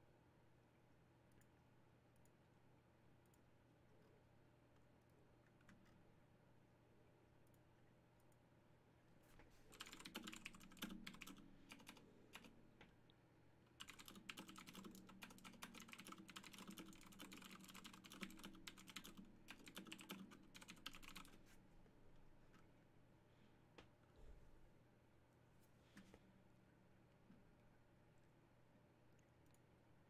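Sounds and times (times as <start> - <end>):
faint computer keyboard typing: 3.2 - 3.5, 4.7 - 6.1, 7.4 - 8.4, 9.5 - 13.0, 13.7 - 21.6, 29.1 - 29.8.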